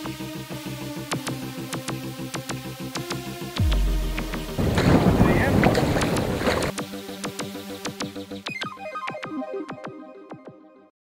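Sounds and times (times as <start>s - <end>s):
background music: 0.0s - 10.9s
wind rumbling on microphone: 4.4s - 6.8s.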